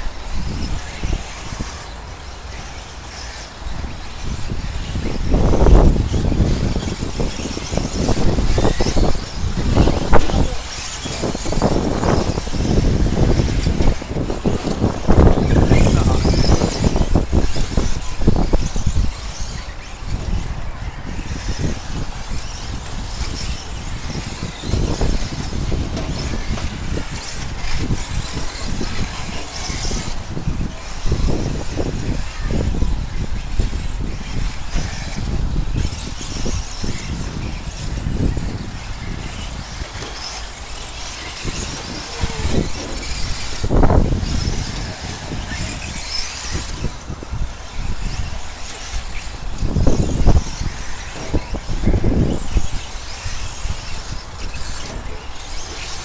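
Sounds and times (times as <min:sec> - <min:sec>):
radio-controlled trucks racing: 0:00.0 - 0:56.0.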